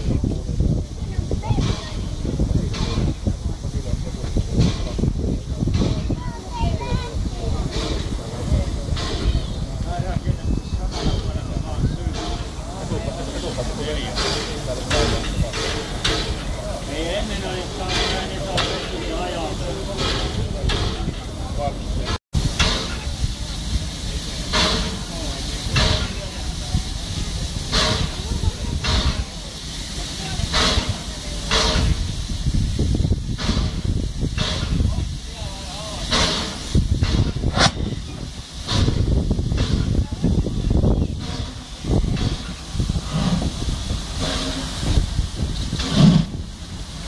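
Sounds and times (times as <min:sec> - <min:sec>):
people talking: 0:00.0 - 0:47.0
steam locomotive hissing: 0:00.0 - 0:47.0.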